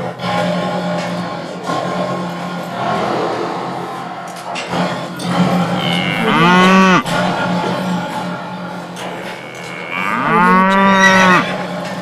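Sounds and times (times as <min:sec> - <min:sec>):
cow mooing: 0:05.7 - 0:07.1, 0:09.1 - 0:11.7.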